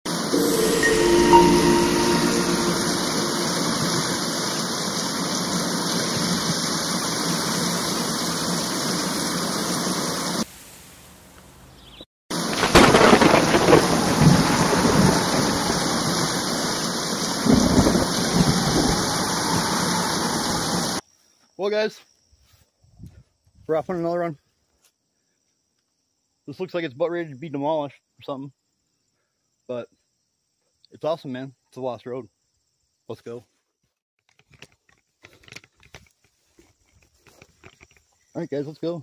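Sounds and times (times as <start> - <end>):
steady rain hiss: 0.2 - 21.0
rolling thunder: 12.5 - 21.0.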